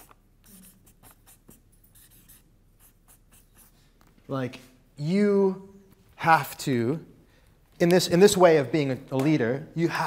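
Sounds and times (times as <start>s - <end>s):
marker pen writing on paper: 0.0s - 3.8s.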